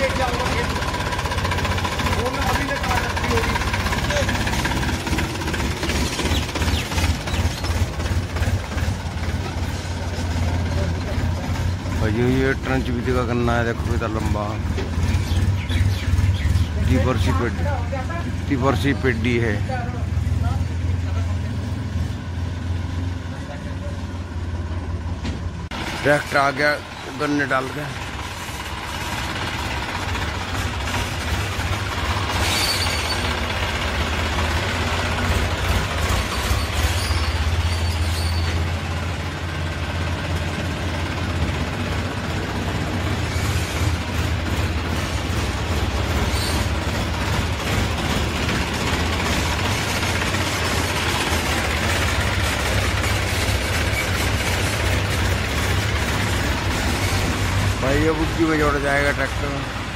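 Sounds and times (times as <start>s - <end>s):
tractor diesel engine running: 0.0s - 59.9s.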